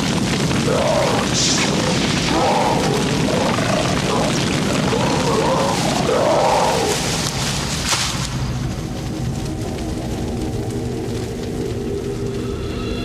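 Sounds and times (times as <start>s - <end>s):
rough noise: 0.0s - 13.0s
music with long held notes: 7.2s - 13.0s.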